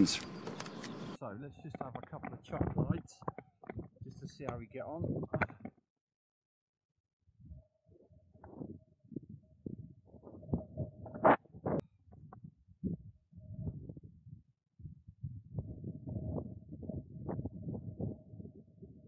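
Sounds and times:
wind buffeting microphone: 8.4 - 19.0.

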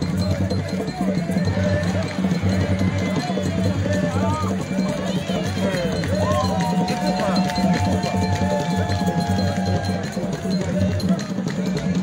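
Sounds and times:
drums beating fast rhythm: 0.0 - 12.0
voices singing and calling: 0.0 - 12.0.

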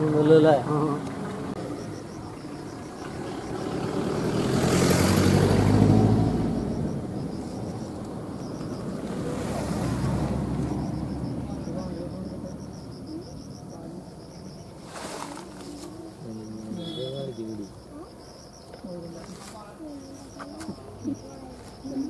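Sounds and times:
vehicle engine: 0.0 - 22.0.

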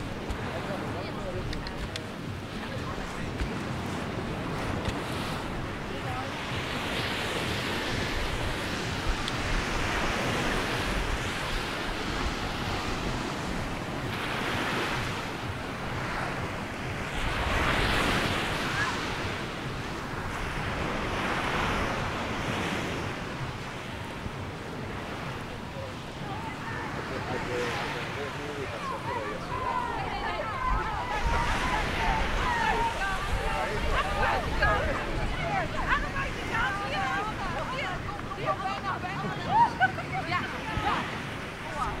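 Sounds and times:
wind rumble on microphone: 0.0 - 27.2, 28.4 - 42.0.

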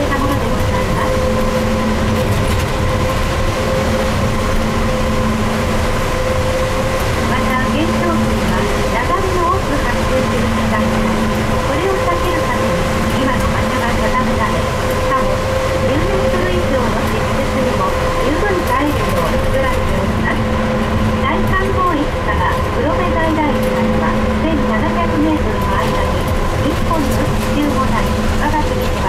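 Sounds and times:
faint passenger voices: 0.0 - 29.0
trolleybus rumble: 0.0 - 29.0.

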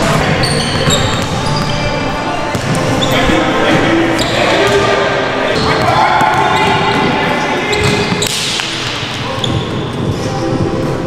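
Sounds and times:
players' voices echoing: 0.0 - 11.0
basketball bouncing on hardwood floor: 0.6 - 1.7.

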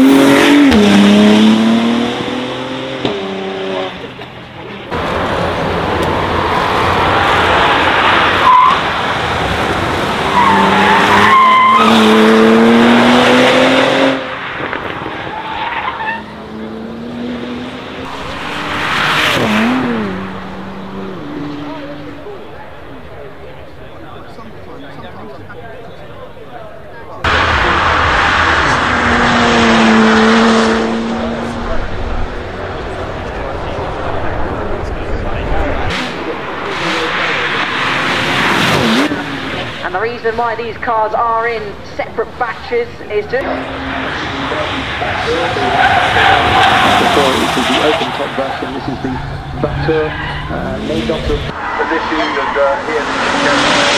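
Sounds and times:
car engine accelerating hard: 0.0 - 15.1, 16.0 - 40.3, 43.4 - 53.9
tyre squeal: 10.3 - 12.1.

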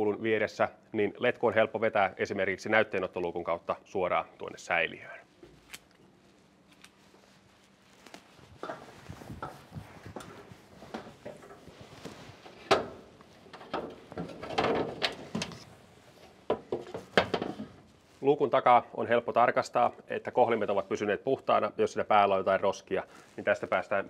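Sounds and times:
footsteps on metal ladder: 8.6 - 15.6
metal knocks and clatter: 12.4 - 15.6, 16.5 - 17.7.

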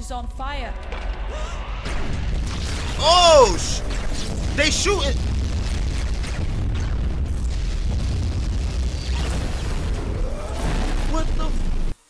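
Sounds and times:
explosion rumble with hiss: 1.8 - 12.0.

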